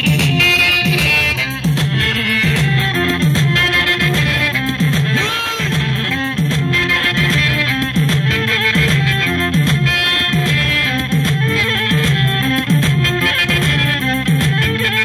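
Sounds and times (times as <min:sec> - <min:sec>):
keyboard: 0:00.0 - 0:15.0
saxophone: 0:00.0 - 0:15.0.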